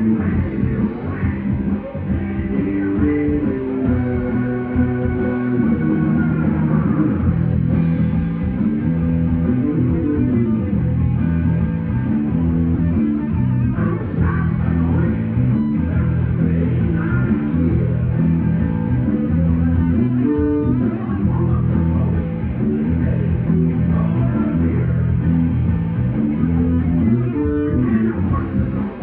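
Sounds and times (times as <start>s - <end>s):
man singing into a microphone: 0.0s - 7.3s
bass guitar: 0.0s - 29.0s
electric guitar: 0.0s - 29.0s.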